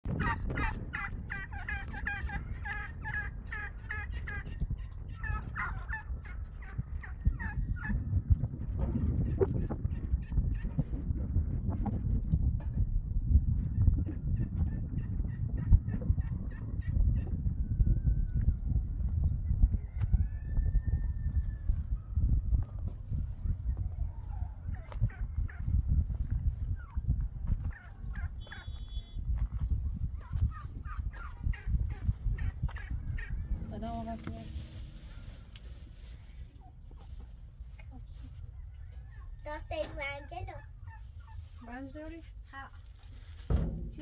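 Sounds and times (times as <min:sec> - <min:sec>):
turkeys gobbling: 0:00.1 - 0:08.0, 0:24.3 - 0:25.8, 0:26.7 - 0:29.0, 0:30.2 - 0:41.7
low rumbling noise: 0:21.0 - 0:39.7.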